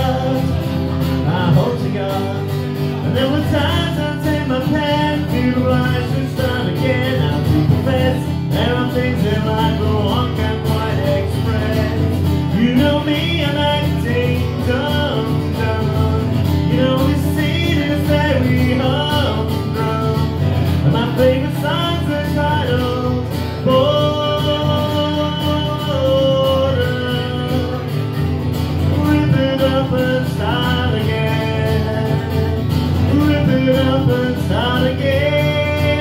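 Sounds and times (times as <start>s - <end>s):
acoustic guitar strumming chords: 0.0s - 36.0s
man singing: 0.0s - 36.0s.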